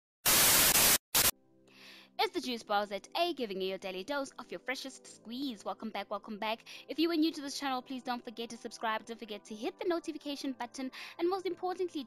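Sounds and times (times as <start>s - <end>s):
white-noise static bursts: 0.2s - 1.3s.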